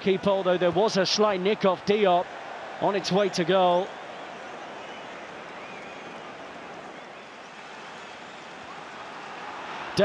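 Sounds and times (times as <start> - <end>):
stadium crowd din: 0.0 - 10.0
scattered shouts or whistles: 4.1 - 9.4.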